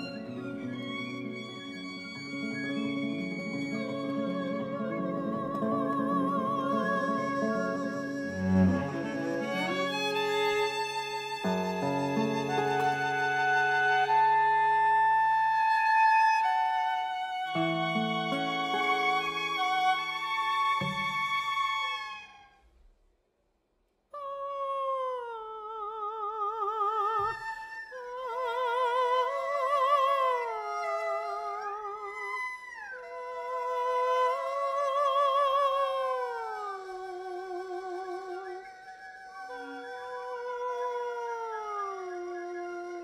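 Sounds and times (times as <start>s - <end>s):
chamber ensemble music: 0.0s - 22.4s.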